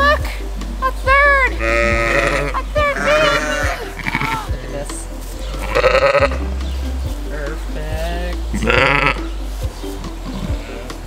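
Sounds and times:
sheep bleating: 1.5s - 4.6s, 10.4s - 11.0s.

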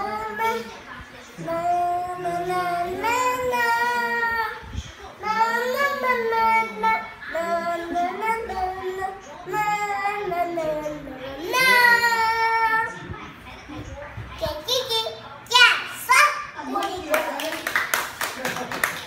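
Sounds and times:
girl singing unaccompanied: 0.0s - 0.8s, 1.4s - 12.9s.

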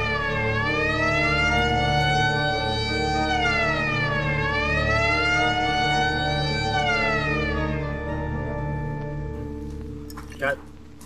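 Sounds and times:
wailing siren: 0.0s - 10.0s
low musical drone: 0.0s - 11.0s.

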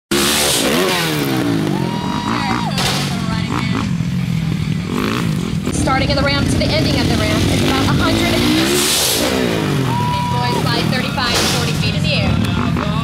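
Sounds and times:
dirt bike engine revving: 0.1s - 13.0s.

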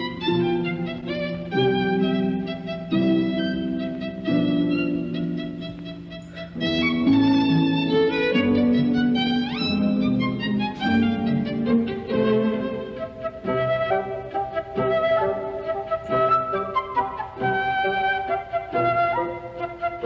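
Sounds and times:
orchestral strings playing: 0.0s - 20.0s.

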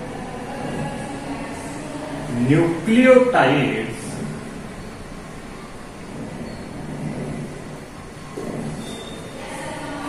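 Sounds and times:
room hum and hiss: 0.0s - 10.0s
faint squeak: 6.1s - 7.4s, 8.4s - 9.9s.

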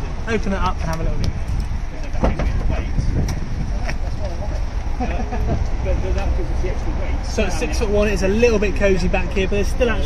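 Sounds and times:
steady low rumble: 0.0s - 10.0s
knocks against car door and seat: 2.2s - 2.6s.

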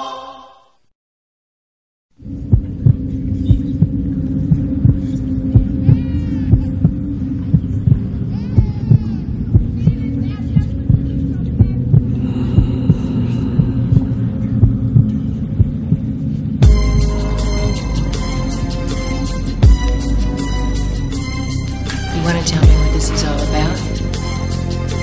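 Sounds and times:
pulsing heartbeat thump: 2.2s - 19.0s, 19.6s - 20.8s
low droning hum: 2.2s - 25.0s.

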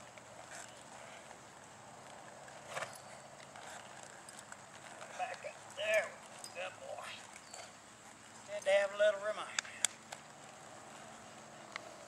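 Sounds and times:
horse hoofbeats on dirt: 0.0s - 12.0s.

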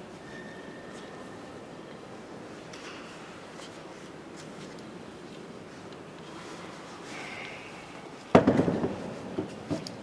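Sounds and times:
loud thump: 8.4s - 9.0s.

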